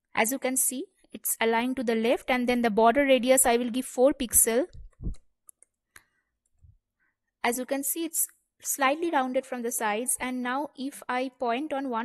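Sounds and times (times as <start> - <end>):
soft low thump: 4.8 - 5.2.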